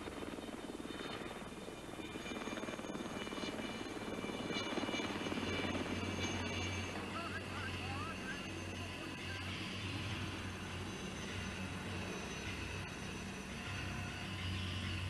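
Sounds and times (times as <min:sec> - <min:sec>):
helicopter rotor chop: 0:00.0 - 0:15.0
thin high whine: 0:01.2 - 0:15.0.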